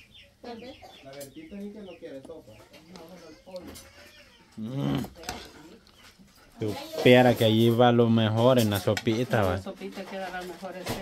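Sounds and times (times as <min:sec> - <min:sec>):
chickens clucking: 0:00.0 - 0:04.5, 0:05.1 - 0:10.4
faint background voices: 0:00.4 - 0:11.0.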